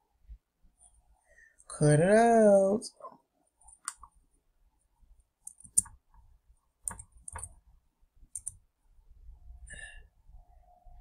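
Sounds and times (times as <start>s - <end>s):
computer mouse and keyboard clicks: 3.6s - 4.2s, 5.4s - 7.6s, 8.3s - 8.6s.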